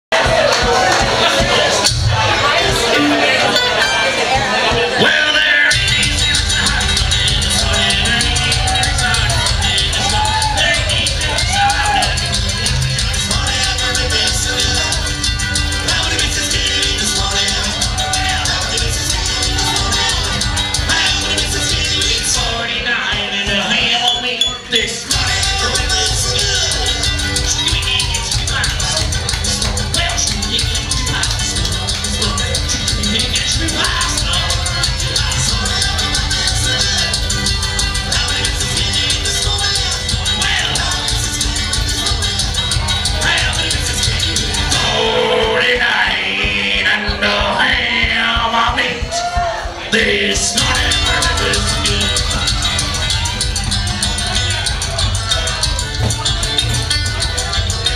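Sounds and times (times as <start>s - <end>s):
banjo: 0.1s - 22.8s
person singing: 0.1s - 57.9s
mandolin: 0.3s - 11.6s
one-string bass: 50.6s - 57.9s.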